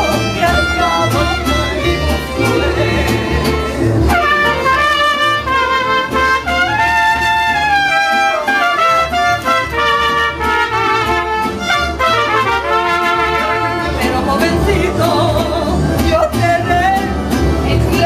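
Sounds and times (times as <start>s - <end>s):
pulsing bass guitar: 0.0s - 18.0s
strummed guitars: 0.0s - 18.0s
trumpets playing melody: 4.1s - 14.1s.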